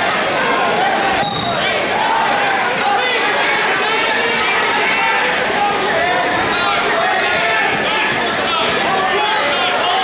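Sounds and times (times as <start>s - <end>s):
crowd shouting in echoing gym: 0.0s - 10.0s.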